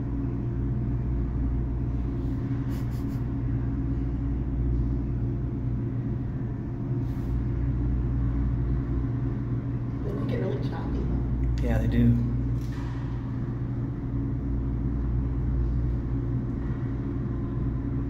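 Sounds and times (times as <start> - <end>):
low mechanical hum and rumble: 0.0 - 18.0.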